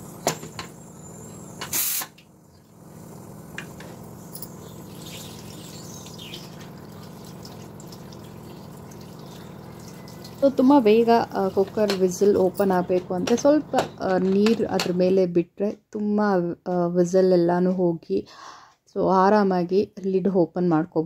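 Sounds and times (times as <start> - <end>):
loud burst of noise: 1.6 - 2.2
tap water running into sink: 4.9 - 12.1.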